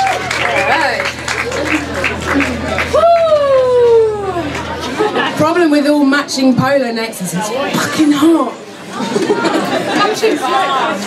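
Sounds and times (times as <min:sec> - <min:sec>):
people talking and chattering: 0:00.0 - 0:11.0.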